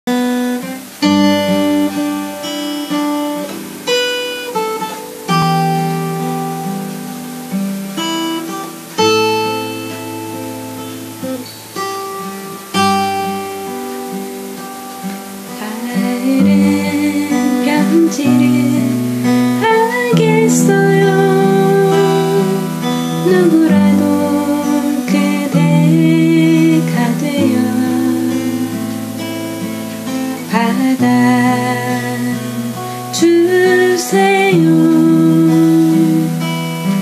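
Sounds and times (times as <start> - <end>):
acoustic guitar chords ringing: 0.1 - 37.0.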